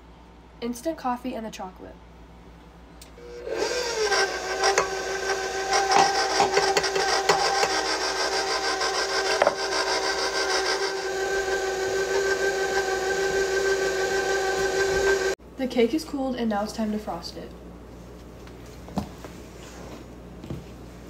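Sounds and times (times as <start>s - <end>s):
beater churning frosting: 3.2s - 15.4s
stand mixer motor whine: 3.2s - 15.4s.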